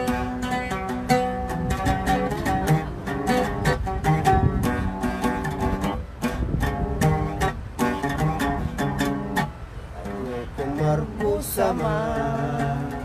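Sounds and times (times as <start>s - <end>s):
oud being plucked: 0.0s - 13.0s.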